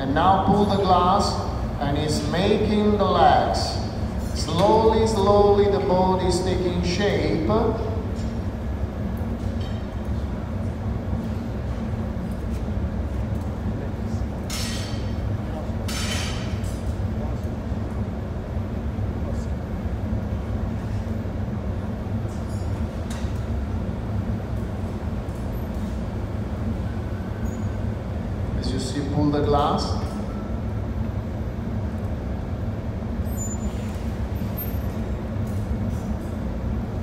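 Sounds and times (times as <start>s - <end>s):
gas furnace roaring: 0.0s - 37.0s.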